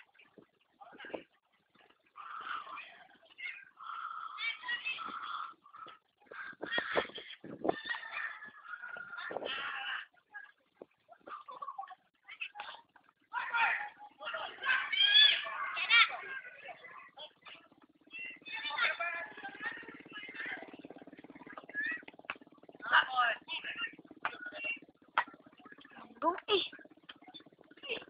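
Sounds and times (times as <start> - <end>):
voices shouting and calling: 0.0 - 28.0.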